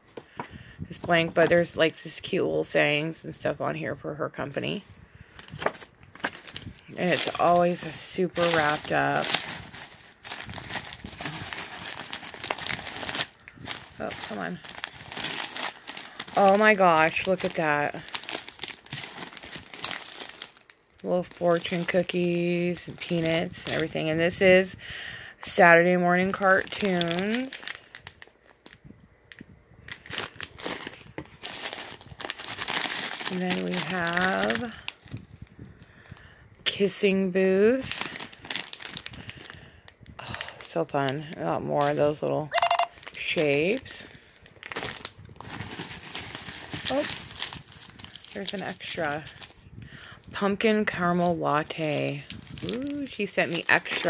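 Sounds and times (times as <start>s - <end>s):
plastic bag crinkling: 5.2s - 24.0s, 26.3s - 36.2s, 37.7s - 54.0s
hand rummaging through paper shred: 5.4s - 23.9s, 29.9s - 35.2s, 37.7s - 39.6s, 42.9s - 49.6s, 51.8s - 54.0s.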